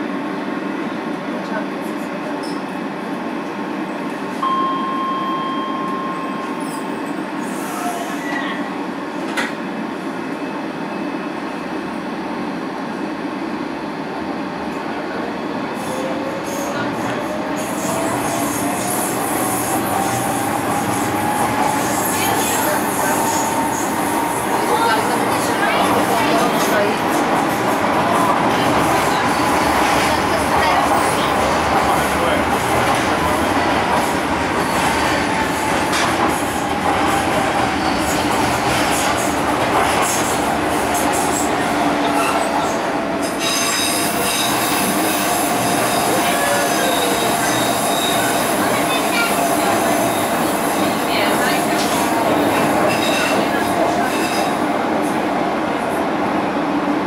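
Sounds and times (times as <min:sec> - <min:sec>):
train wheels rumbling on rails: 0:14.7 - 0:57.0.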